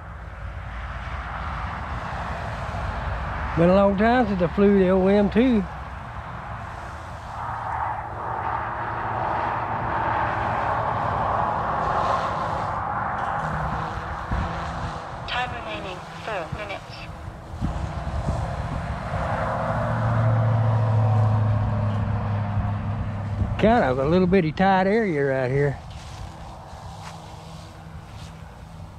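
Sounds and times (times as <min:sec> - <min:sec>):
rc helicopter rotors buzzing: 0:10.4 - 0:21.2, 0:25.1 - 0:28.9.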